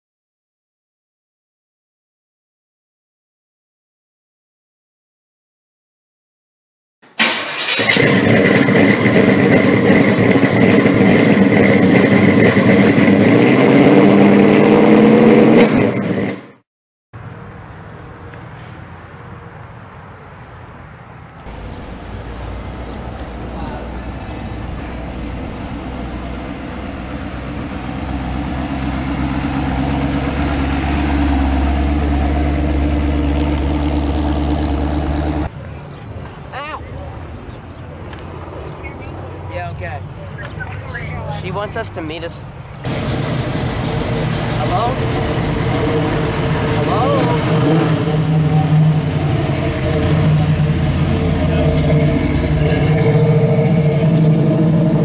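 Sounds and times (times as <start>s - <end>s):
car engine starting and running: 7.1s - 16.6s, 21.4s - 35.5s, 41.0s - 55.0s.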